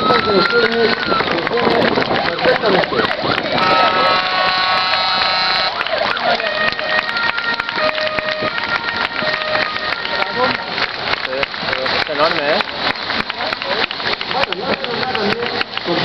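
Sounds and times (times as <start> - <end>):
crowd chatter: 0.0 - 16.0
truck horns sounding: 2.1 - 11.2.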